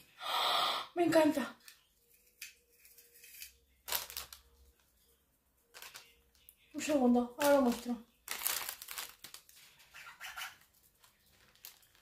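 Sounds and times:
gift packaging rustling: 1.6 - 5.1, 5.7 - 12.0.

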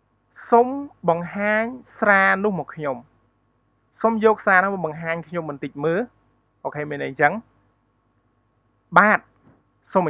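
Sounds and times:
person speaking: 0.4 - 3.1, 4.0 - 7.4, 8.9 - 9.3.

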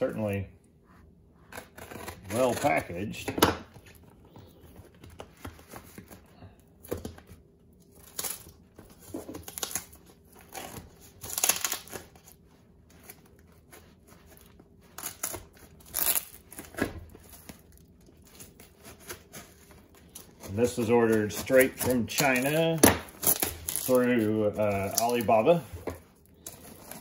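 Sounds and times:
plastic wrapping crinkling and tearing: 7.8 - 27.0.

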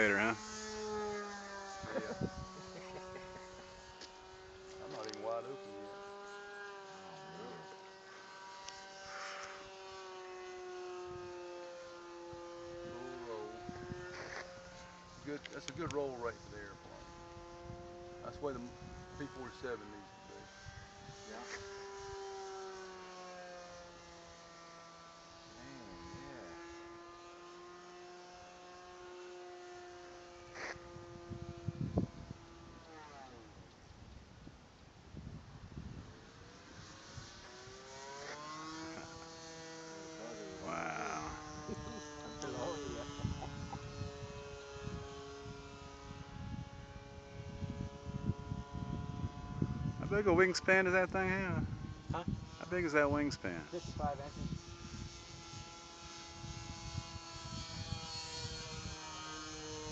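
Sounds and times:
model plane electric motor whine: 0.0 - 59.9.

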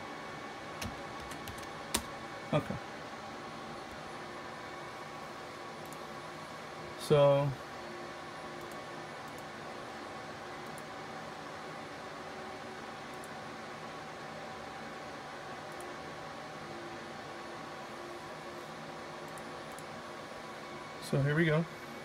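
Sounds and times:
faint steady hum tones: 0.0 - 22.0
server cooling fans whirring: 0.0 - 22.0.

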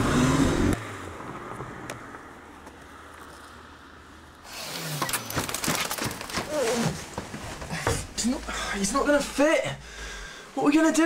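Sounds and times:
knocks and clatters: 5.0 - 8.3.

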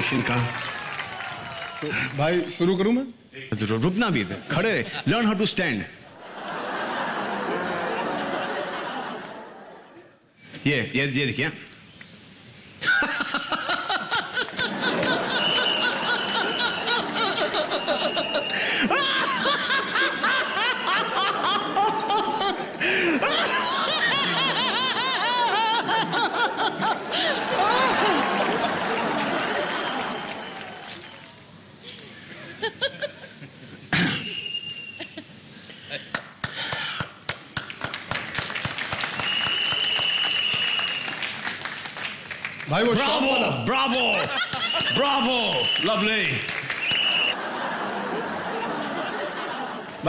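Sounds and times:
audience applause: 0.0 - 2.4, 6.5 - 9.6, 14.2 - 19.5, 26.7 - 31.3, 36.4 - 43.0, 44.0 - 50.0
people laughing: 6.0 - 10.2, 12.8 - 31.0, 31.8 - 33.9, 43.9 - 50.0
man laughing heartily: 12.8 - 28.2, 44.2 - 45.0
steady high whistle: 15.3 - 16.9, 17.7 - 18.7, 34.2 - 35.2, 39.2 - 41.2, 44.6 - 46.1, 46.8 - 47.4.

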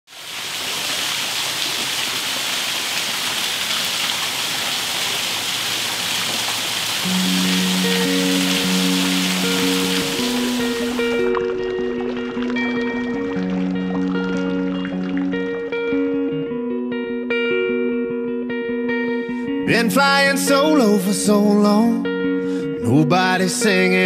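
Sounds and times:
fountain water splashing: 0.1 - 15.6
music with long low notes: 7.0 - 24.0.

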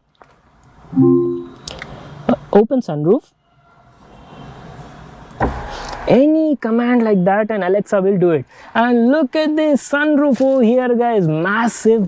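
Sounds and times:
electronic chime: 0.9 - 1.6.

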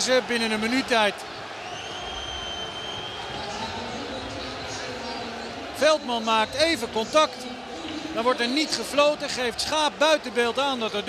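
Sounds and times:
stadium crowd roaring: 0.0 - 11.0
high whistle: 1.6 - 3.4.

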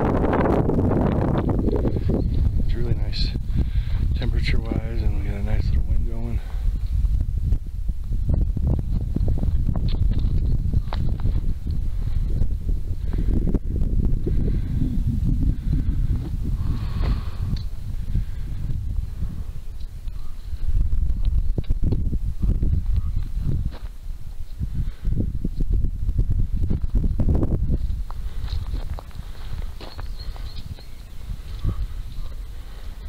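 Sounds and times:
wind buffeting microphone: 0.0 - 33.0
footsteps on gravel trail: 8.6 - 13.3, 16.1 - 24.6, 26.6 - 33.0.

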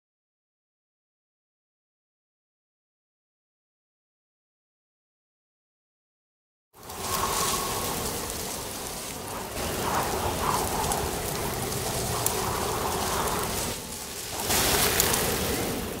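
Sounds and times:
rain hissing: 6.8 - 16.0.

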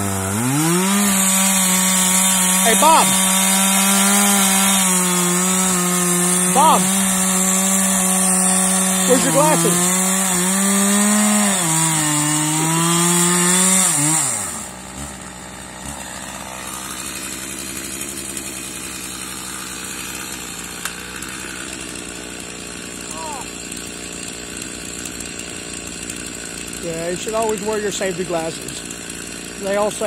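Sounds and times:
chainsaw cutting wood: 0.0 - 30.0
chainsaw idling: 0.0 - 30.0.

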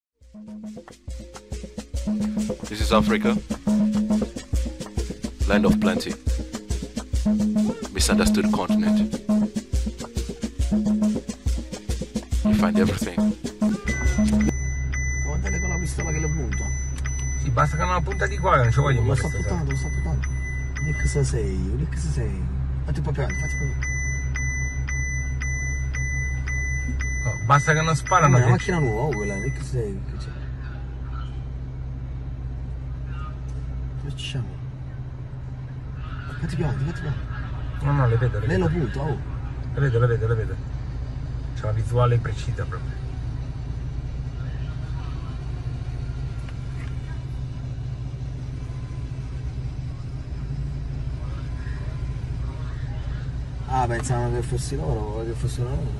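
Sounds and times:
low rumble of road vehicles: 0.2 - 55.9
high-pitched electronic alarm tone: 2.0 - 4.4, 7.2 - 9.7, 10.6 - 11.3, 12.2 - 21.3, 23.2 - 29.9
low steady hum: 12.3 - 55.9
repeating tick: 12.5 - 14.6
faint voices talking: 29.8 - 41.6, 42.5 - 54.7.

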